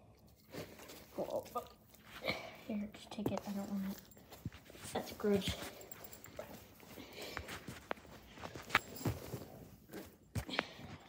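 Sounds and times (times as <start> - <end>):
dog moving on carpet: 3.2 - 10.2.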